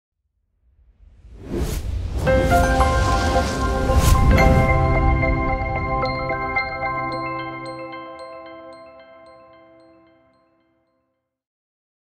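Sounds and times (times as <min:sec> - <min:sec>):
whoosh: 0:01.0 - 0:07.0.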